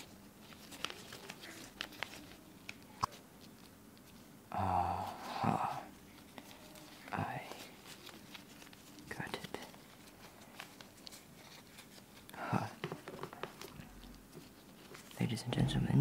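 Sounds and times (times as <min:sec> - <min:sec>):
soft breathy vocal sounds: 0:04.5 - 0:07.8, 0:12.2 - 0:12.8.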